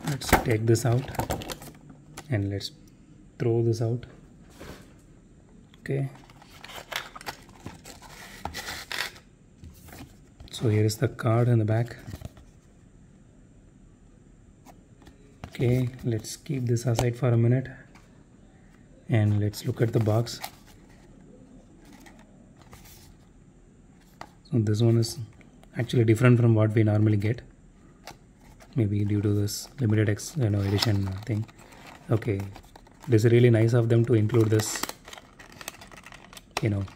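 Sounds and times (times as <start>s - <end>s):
plastic packaging rustle: 29.7s - 36.9s
plastic packaging clicks and crinkles: 34.0s - 36.9s.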